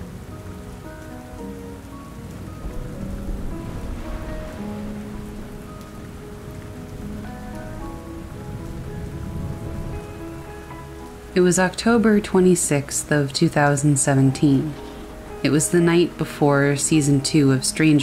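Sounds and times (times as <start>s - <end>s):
soft slow background music: 0.0s - 18.0s
steady rain: 0.0s - 18.0s.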